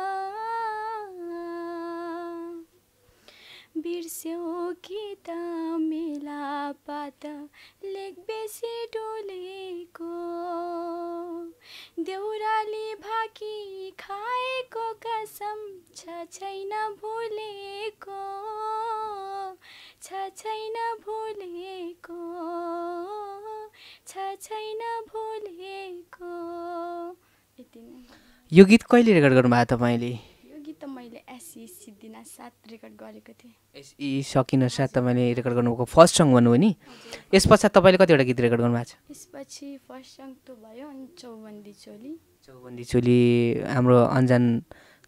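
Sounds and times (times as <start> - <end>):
woman singing unaccompanied: 0.0 - 2.8, 3.7 - 28.5, 30.2 - 33.8, 39.0 - 43.2
woman breathing in: 3.0 - 3.7, 7.5 - 7.8, 11.6 - 12.0, 19.6 - 20.0, 23.7 - 24.0, 27.2 - 28.5, 36.8 - 37.3, 44.7 - 45.0.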